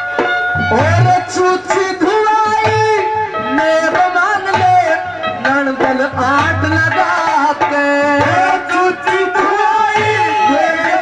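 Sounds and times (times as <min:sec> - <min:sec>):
hand drum beats: 0:00.0 - 0:11.0
melodic instrumental line: 0:00.0 - 0:11.0.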